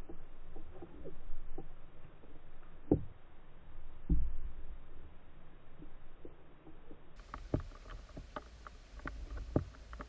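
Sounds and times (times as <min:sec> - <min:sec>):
underwater clicks and knocks: 0:02.8 - 0:03.2, 0:04.0 - 0:04.6, 0:05.8 - 0:10.0.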